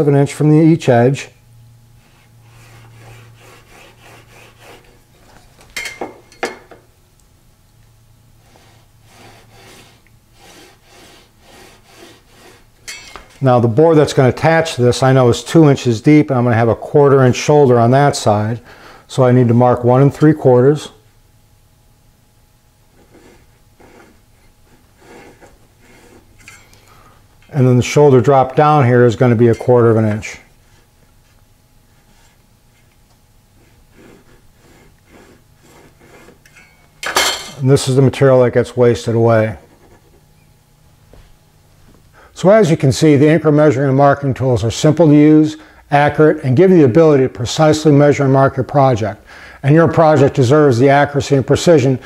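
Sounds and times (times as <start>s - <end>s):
pencil lead scratching wood: 2.0s - 5.0s, 8.4s - 12.7s, 23.0s - 26.3s, 33.6s - 36.4s, 39.6s - 40.2s.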